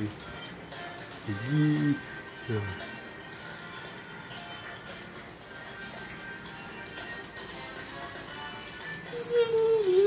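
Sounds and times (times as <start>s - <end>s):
background music from television speaker: 0.0s - 10.0s.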